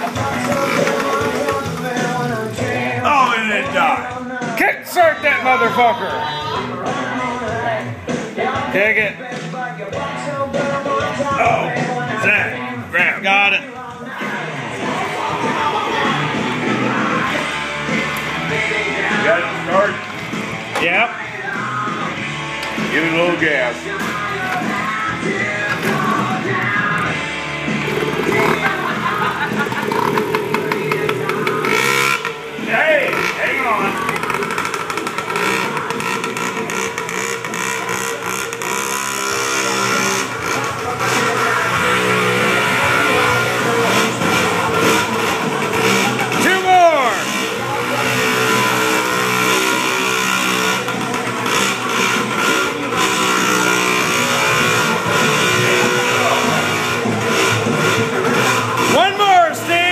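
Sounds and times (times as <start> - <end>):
mini bike engine revving: 0.0 - 2.9, 23.8 - 59.9
rock music: 0.0 - 59.9.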